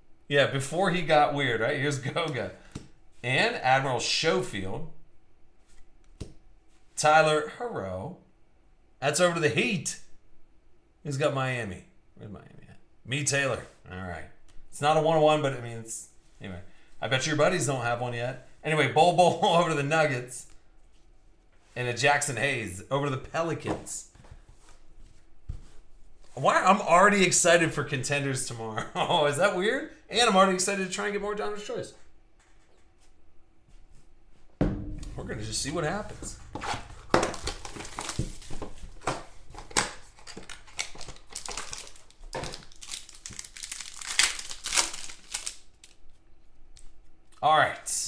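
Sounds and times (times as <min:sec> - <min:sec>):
low thump: 0:34.6 - 0:39.1
cards shuffling rustle: 0:37.7 - 0:46.2.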